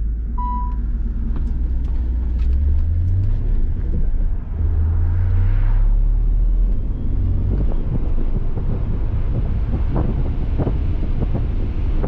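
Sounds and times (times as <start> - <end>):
car engine rumble: 0.0 - 12.0
road noise: 0.0 - 12.0
wind buffeting microphone: 6.8 - 12.0.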